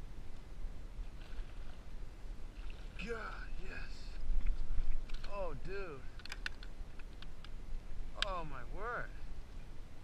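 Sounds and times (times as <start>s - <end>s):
light clicks from fishing gear: 4.0s - 5.4s, 6.0s - 7.6s.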